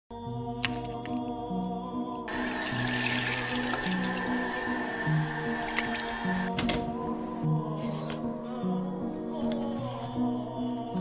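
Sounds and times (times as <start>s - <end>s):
soft background music: 0.1s - 11.0s
tap water running into sink: 2.3s - 6.5s.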